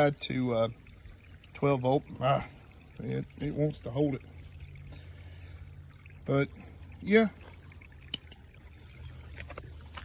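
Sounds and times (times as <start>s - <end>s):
faint trickling water: 0.0s - 10.0s
low steady rumble: 0.0s - 10.0s.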